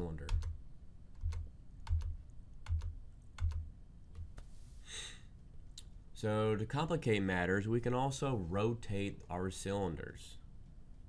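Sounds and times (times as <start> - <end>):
keyboard keys tapping: 0.2 - 3.6.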